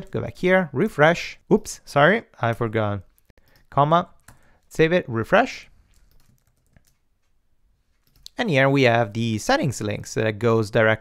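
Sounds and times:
faint keyboard clicks: 3.2 - 4.7, 5.9 - 8.4.

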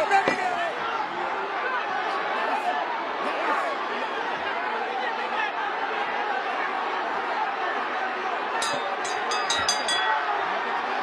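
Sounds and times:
arena crowd chatter: 0.0 - 11.0.

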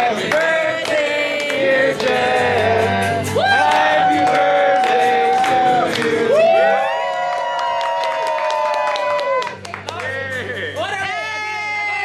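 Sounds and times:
group singing: 0.0 - 6.8
hand clapping: 0.2 - 2.4, 3.6 - 6.4, 7.3 - 10.5.

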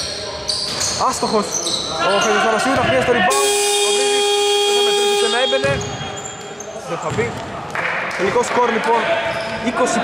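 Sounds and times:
scoreboard buzzer: 3.3 - 6.0.

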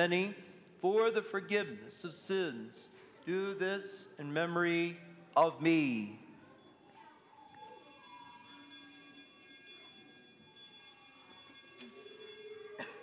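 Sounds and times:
altar bells ringing: 6.0 - 13.0.

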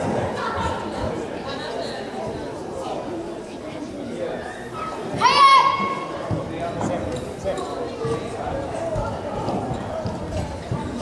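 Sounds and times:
murmur of voices: 0.0 - 11.0
boy's karate shout: 5.2 - 6.1.

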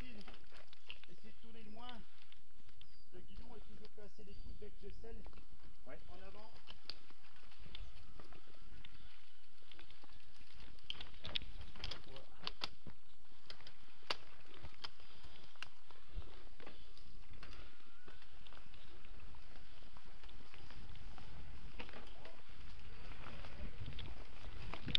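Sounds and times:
bike clicks and rattles: 6.4 - 24.9
bike rolling rumble: 6.4 - 24.9.

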